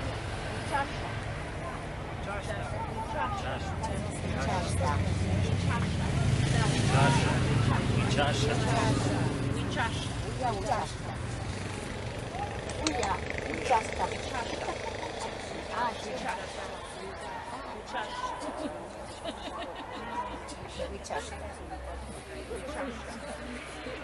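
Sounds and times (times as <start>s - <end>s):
passing vehicle engine drone: 0.0s - 17.5s
indistinct voices: 0.0s - 24.0s.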